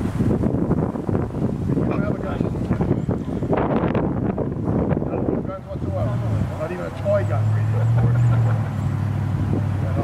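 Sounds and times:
vehicle engine running: 0:00.4 - 0:10.0.

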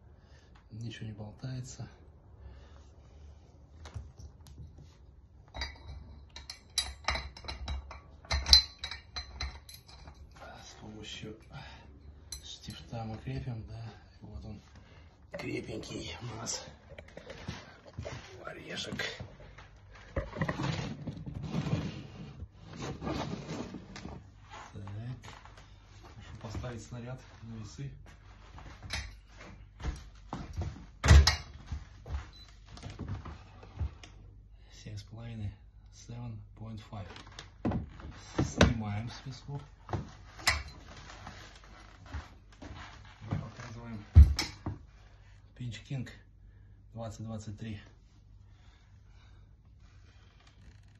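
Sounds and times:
phone rustling and scraping: 0:16.3 - 0:24.8.

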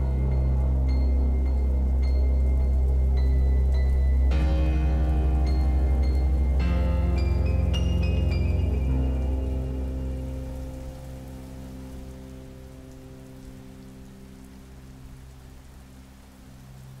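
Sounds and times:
low music drone: 0:00.0 - 0:17.0
steady rain falling: 0:00.0 - 0:17.0.

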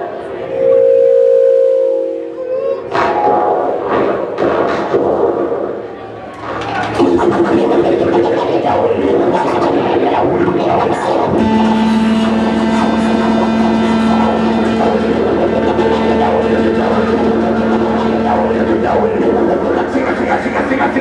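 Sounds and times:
low drone with sustained tones: 0:00.0 - 0:21.0
harsh electronic noise music: 0:02.9 - 0:21.0.

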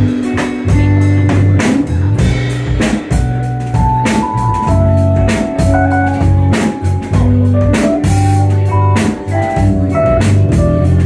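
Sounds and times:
drum kit: 0:00.0 - 0:11.0
electric bass: 0:00.0 - 0:11.0
electric guitar: 0:00.0 - 0:11.0
organ-like keyboard: 0:00.0 - 0:11.0.

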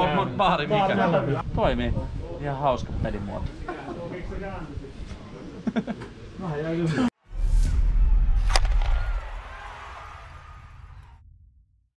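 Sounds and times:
whoosh: 0:07.2 - 0:11.6
sharp hit: 0:07.3 - 0:09.4.

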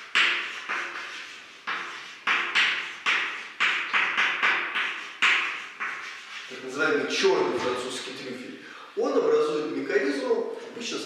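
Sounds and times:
chalk tapping and scraping on blackboard: 0:00.0 - 0:07.8.

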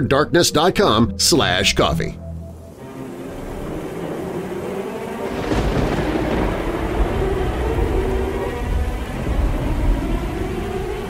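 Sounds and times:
low droning music: 0:00.0 - 0:11.0
rain hiss: 0:02.5 - 0:11.0
rolling thunder: 0:03.1 - 0:11.0.

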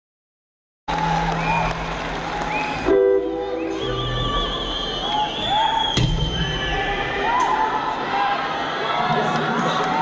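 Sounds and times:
live rock concert: 0:00.9 - 0:10.0.

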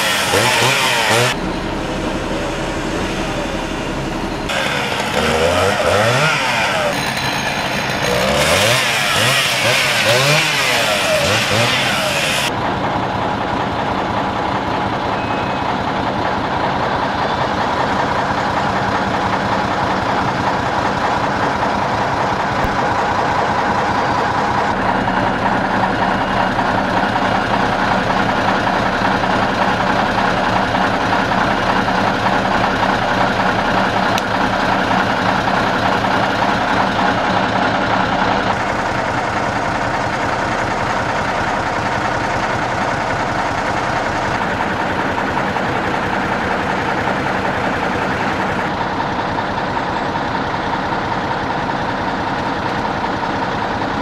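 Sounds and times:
diesel engine running under load: 0:00.0 - 0:54.0
faint high beeps: 0:15.1 - 0:15.7.

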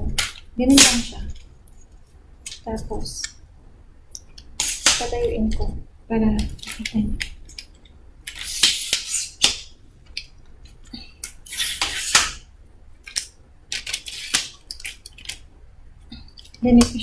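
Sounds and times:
tripod legs sliding: 0:11.4 - 0:12.4.

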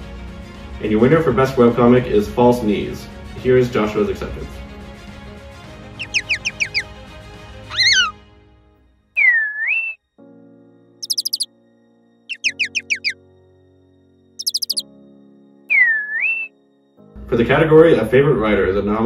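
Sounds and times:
bird chirps in falling notes: 0:06.0 - 0:06.9, 0:07.7 - 0:08.2, 0:09.2 - 0:10.0, 0:11.0 - 0:11.5, 0:12.3 - 0:13.2, 0:14.4 - 0:14.9, 0:15.7 - 0:16.6
swooping whistle: 0:06.0 - 0:06.9, 0:07.7 - 0:08.2, 0:09.2 - 0:10.0, 0:11.0 - 0:11.5, 0:12.3 - 0:13.2, 0:14.4 - 0:14.9, 0:15.7 - 0:16.6.

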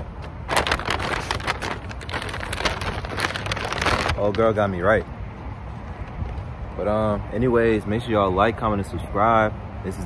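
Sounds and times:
paper bag crinkling: 0:00.4 - 0:04.6.

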